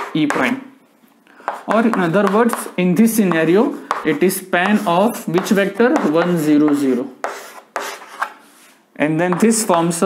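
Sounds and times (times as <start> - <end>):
chalk scraping on chalkboard: 1.4 - 9.9.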